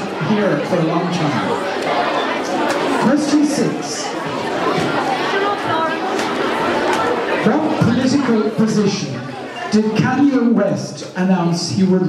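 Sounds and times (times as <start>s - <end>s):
many voices chattering in a hall: 0.0s - 12.0s.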